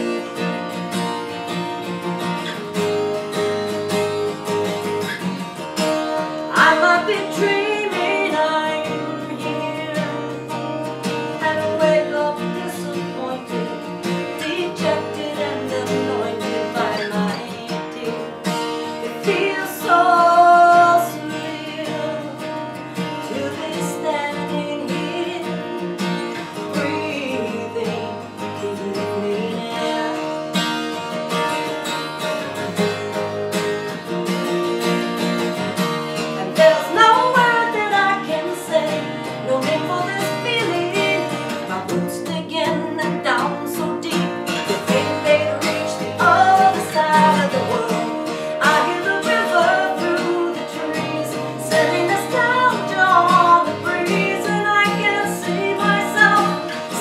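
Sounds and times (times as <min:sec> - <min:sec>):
strummed acoustic guitar: 0:00.0 - 0:57.0
woman singing: 0:06.2 - 0:30.6, 0:36.1 - 0:57.0.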